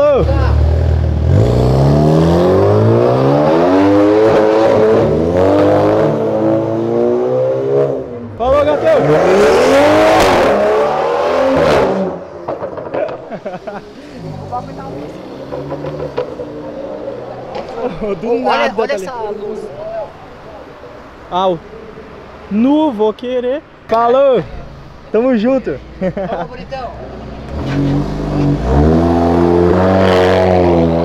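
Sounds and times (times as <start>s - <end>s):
car accelerating through upshifts: 0.6s - 12.8s, 14.2s - 17.8s, 27.0s - 31.0s.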